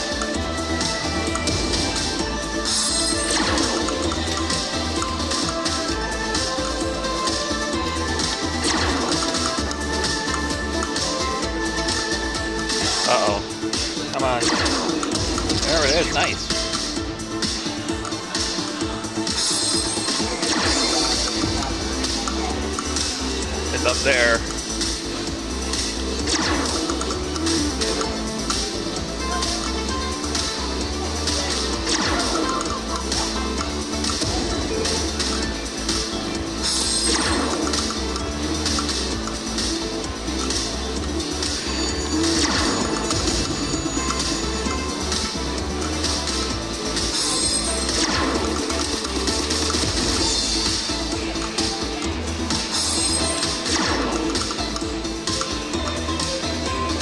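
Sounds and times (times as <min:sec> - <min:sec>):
slot machine bonus music: 0:00.0 - 0:57.0.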